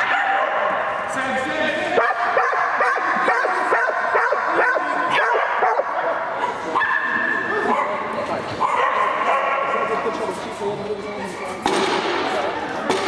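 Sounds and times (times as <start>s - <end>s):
dog barking in high yips: 0.0s - 0.8s, 2.0s - 9.7s.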